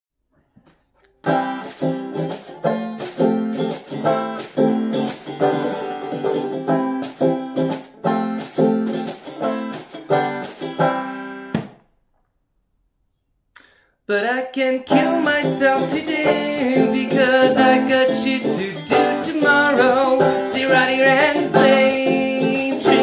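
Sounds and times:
banjo strumming chords: 0:01.2 - 0:11.7, 0:14.7 - 0:23.0.

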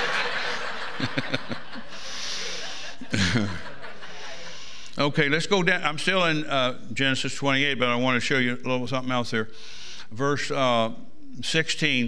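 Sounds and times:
man chuckling: 0:00.0 - 0:04.5
congregation laughing: 0:00.0 - 0:04.8.

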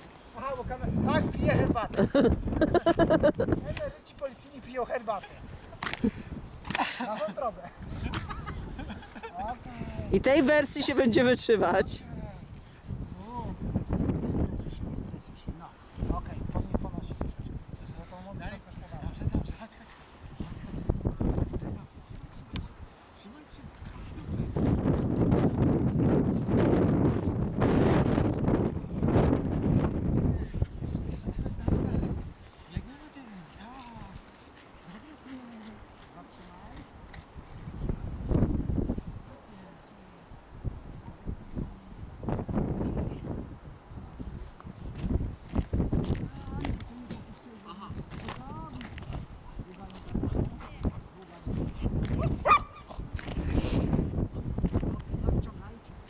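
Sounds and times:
wind buffeting microphone: 0:00.0 - 0:06.8, 0:07.5 - 0:35.0, 0:35.7 - 0:39.4, 0:40.2 - 0:56.0
rustle: 0:00.0 - 0:25.7, 0:28.9 - 0:56.0
puppy barking: 0:52.2 - 0:52.9.

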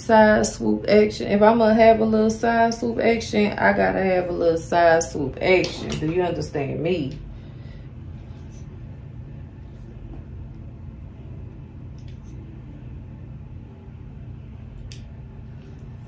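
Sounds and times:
low room noise rumble: 0:00.0 - 0:16.0.

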